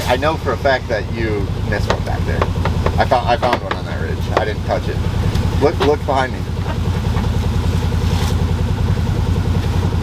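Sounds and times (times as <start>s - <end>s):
utility vehicle engine idling: 0.0s - 10.0s.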